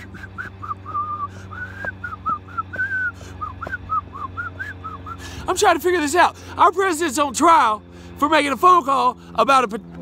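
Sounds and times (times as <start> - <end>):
man whistling a quick tune: 0.0 - 5.2.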